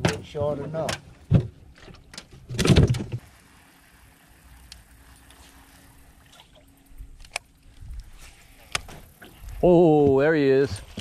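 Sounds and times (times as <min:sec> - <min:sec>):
clatter in aluminum boat: 0:00.0 - 0:03.3
faint steady hum: 0:00.1 - 0:11.0.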